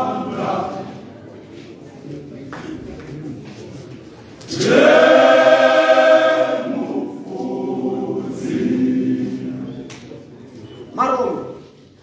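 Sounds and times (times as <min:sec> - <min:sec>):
men's choir singing: 0:00.0 - 0:01.1, 0:04.5 - 0:09.9.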